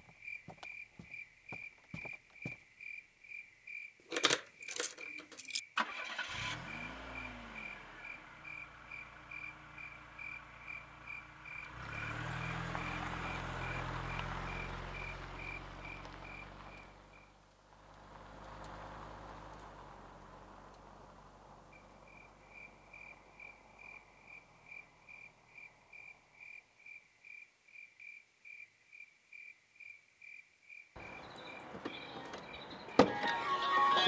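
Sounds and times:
crickets chirping: 0.0s - 17.4s, 19.9s - 33.1s
car engine starting and idling: 5.0s - 26.4s, 31.0s - 34.0s
car door shutting: 31.0s - 34.0s.

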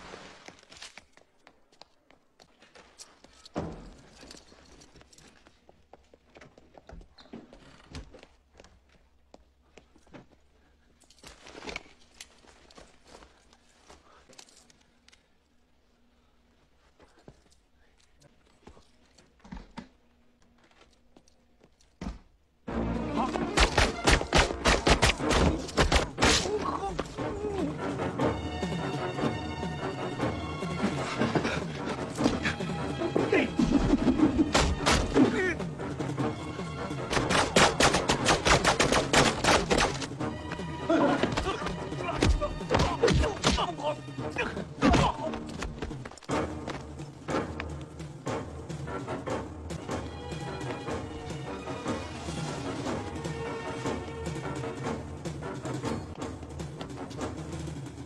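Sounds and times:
action music score: 22.7s - 58.0s
punches and thuds: 23.4s - 26.5s, 42.2s - 43.7s.

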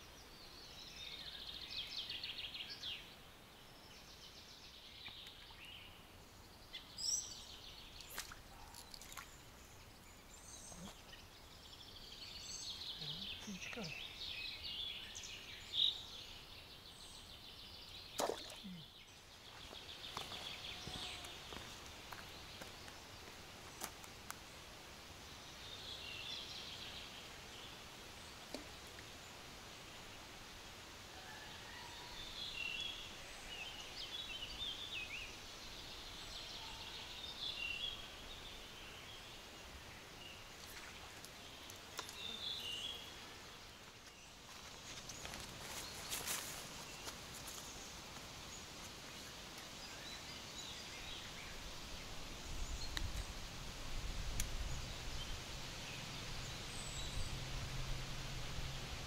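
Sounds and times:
songbirds trilling: 0.0s - 23.9s.

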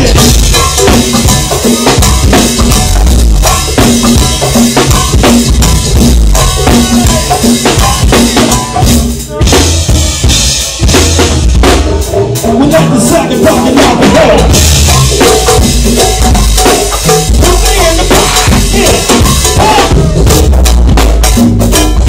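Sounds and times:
drum kit beat: 0.0s - 22.0s.

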